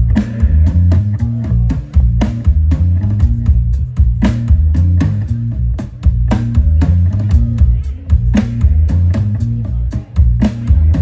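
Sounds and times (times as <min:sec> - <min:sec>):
bass guitar: 0:00.0 - 0:11.0
drum kit beat: 0:00.0 - 0:11.0
electric guitar: 0:00.0 - 0:11.0.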